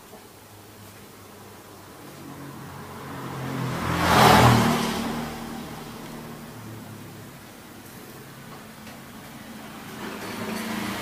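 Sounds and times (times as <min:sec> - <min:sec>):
vehicle passing by: 0:01.8 - 0:08.5, 0:09.3 - 0:11.0.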